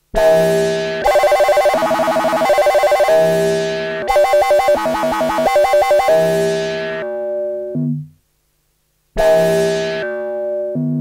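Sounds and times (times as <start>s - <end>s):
synthesizer warbling trill: 1.0s - 6.4s.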